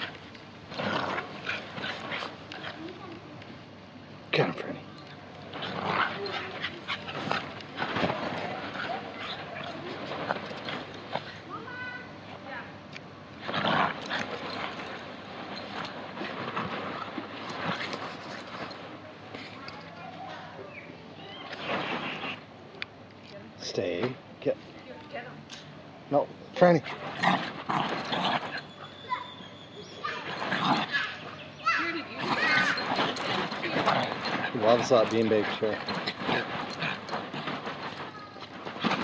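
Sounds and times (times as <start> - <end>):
dogs growling: 0.0 - 3.0, 5.4 - 11.5, 13.4 - 18.8, 26.8 - 39.0
dogs scuffling on vinyl: 5.4 - 12.0, 13.4 - 20.5, 21.4 - 22.4, 26.8 - 39.0
small dog yipping and whining: 28.6 - 31.2.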